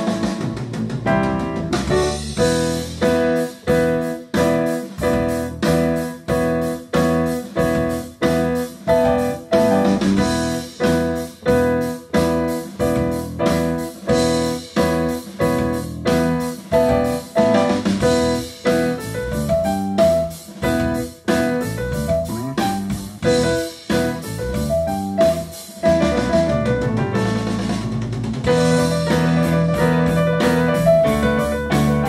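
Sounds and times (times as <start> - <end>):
piano playing a tune: 0.0 - 32.0.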